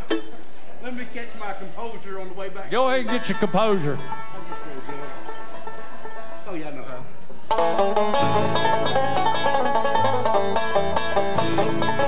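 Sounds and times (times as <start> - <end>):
banjo: 0.0 - 0.4, 2.8 - 12.0
acoustic bluegrass string instruments: 0.0 - 1.1, 1.8 - 12.0.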